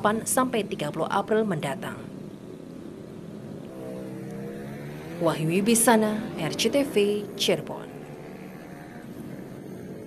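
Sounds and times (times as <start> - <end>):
motorcycle traffic: 0.0 - 10.0.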